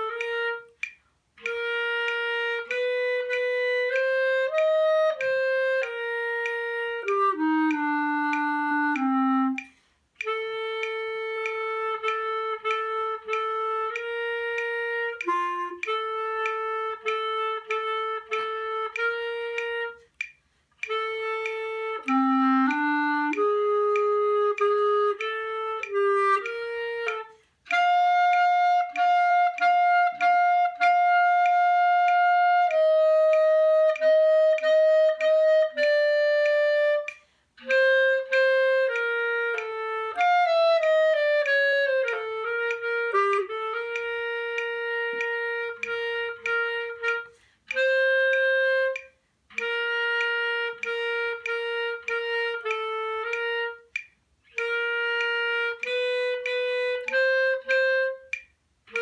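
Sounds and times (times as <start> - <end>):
solo clarinet playing: 0.0 - 59.0.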